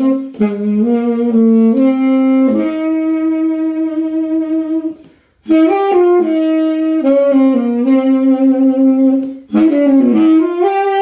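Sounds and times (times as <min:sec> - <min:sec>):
solo saxophone: 0:00.0 - 0:11.0.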